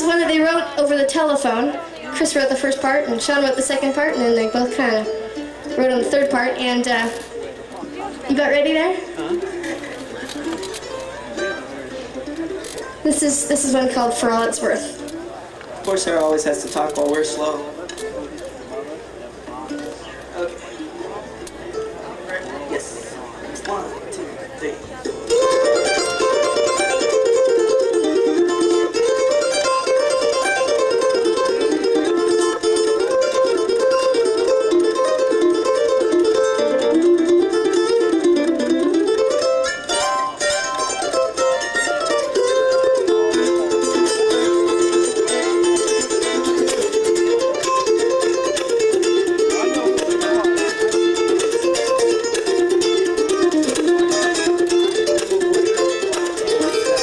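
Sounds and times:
mandolins playing a duet: 0:00.0 - 0:57.0.

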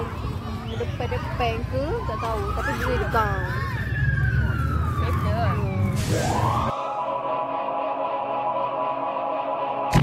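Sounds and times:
traffic rumble: 0:00.0 - 0:06.9
wind: 0:00.0 - 0:10.0
distant siren wailing: 0:00.9 - 0:10.0.

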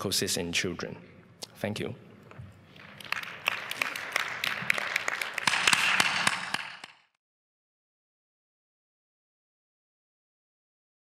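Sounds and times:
audience applauding: 0:02.7 - 0:07.1.

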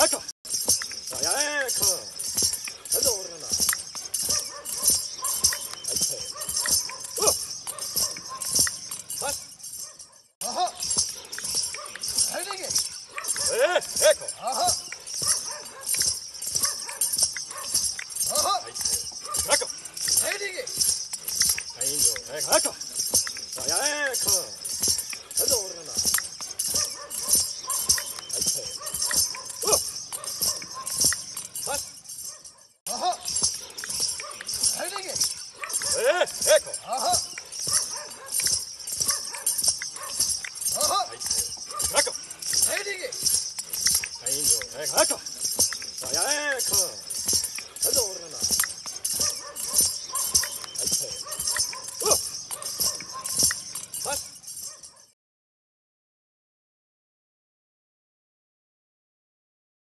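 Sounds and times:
men shouting calls: 0:00.0 - 0:00.3, 0:01.1 - 0:09.5, 0:10.4 - 0:31.9, 0:32.9 - 0:53.1
horse hooves stepping: 0:00.0 - 0:54.9
rhythmic jingle: 0:00.0 - 0:55.0.

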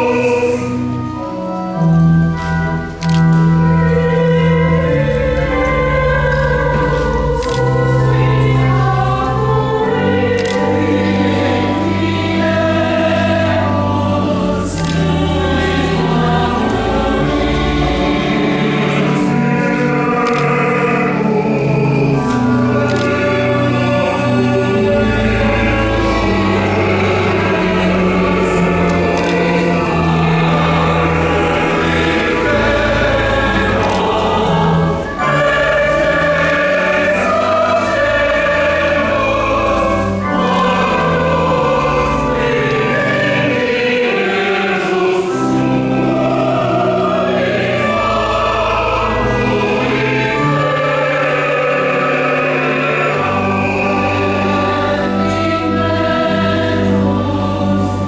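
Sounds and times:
choir singing a hymn: 0:00.0 - 0:58.0
organ accompaniment: 0:00.0 - 0:58.0.

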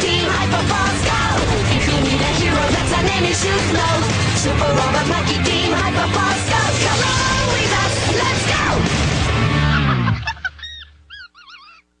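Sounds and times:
theme music: 0:00.0 - 0:10.2
squawking cartoon sound effects: 0:10.6 - 0:11.9.

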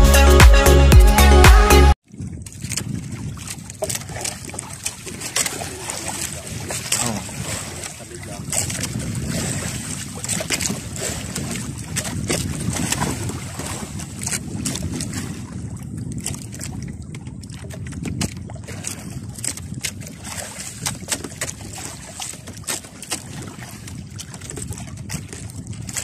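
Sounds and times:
water sloshing against hull: 0:02.0 - 0:26.0
wind buffeting microphone: 0:02.0 - 0:26.0
knocks of gear in boat: 0:02.4 - 0:15.4, 0:17.5 - 0:26.0.

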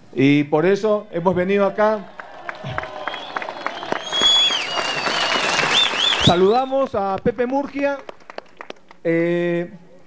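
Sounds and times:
crowd applauding: 0:01.3 - 0:09.0
high whistle: 0:02.7 - 0:06.9.

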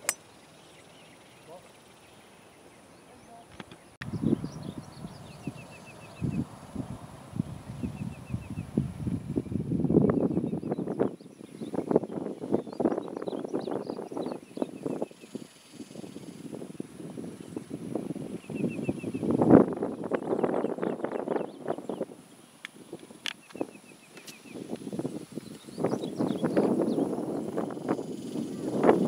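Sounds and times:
wind gusting on microphone: 0:04.0 - 0:29.0.

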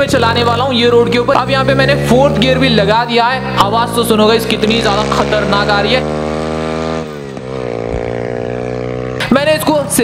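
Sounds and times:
dirt bike engine accelerating: 0:00.0 - 0:10.0.

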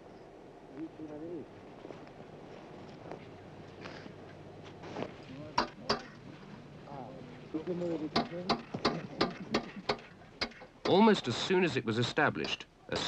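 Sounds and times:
sharp clicks and knocks: 0:08.2 - 0:11.0.

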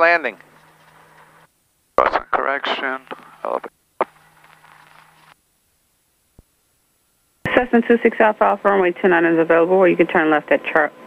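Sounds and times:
open channel hum: 0:00.0 - 0:11.0.

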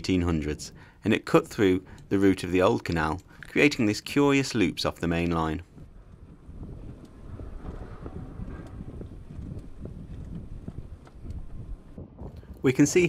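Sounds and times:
bicycle tyres on brick paving: 0:00.0 - 0:12.8
wind buffeting microphone: 0:00.0 - 0:13.0.

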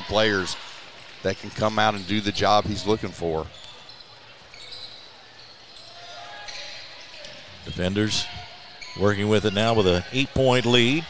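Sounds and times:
murmur of gym: 0:00.0 - 0:11.0.

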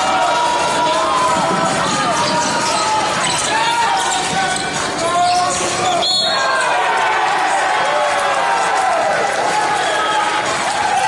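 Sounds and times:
voices calling: 0:00.0 - 0:07.1
sneakers squeaking: 0:00.5 - 0:06.8
basketball dribbling: 0:01.0 - 0:06.2.

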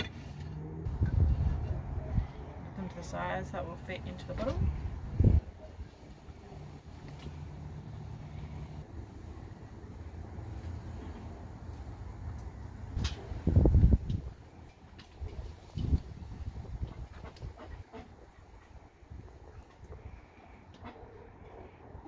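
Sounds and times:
low steady rumble: 0:00.0 - 0:22.0.

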